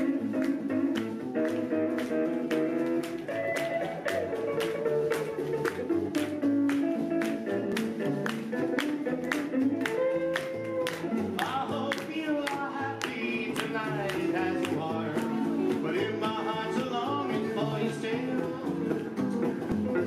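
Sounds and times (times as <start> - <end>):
guitar melody: 0.0 - 20.0
rockabilly band playing: 0.0 - 20.0.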